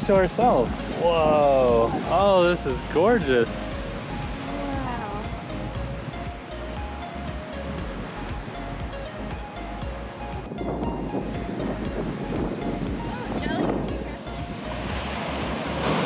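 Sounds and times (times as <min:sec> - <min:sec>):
instrumental music: 0:00.0 - 0:16.0
surf breaking on beach: 0:13.0 - 0:16.0.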